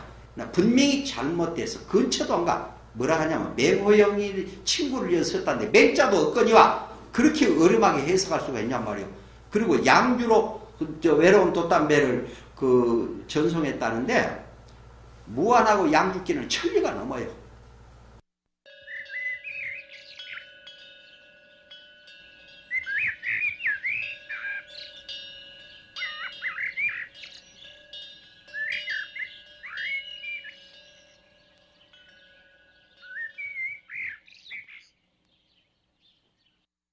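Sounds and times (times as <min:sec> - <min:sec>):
held steady tones: 0:18.7 - 0:34.2
birds chirping and calling: 0:18.8 - 0:36.6.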